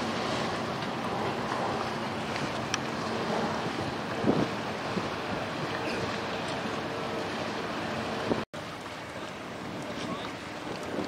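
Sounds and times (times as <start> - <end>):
wind on microphone: 0.0 - 8.4, 9.3 - 11.0
faint boat engine hum: 0.0 - 11.0
river ambience: 0.0 - 11.0.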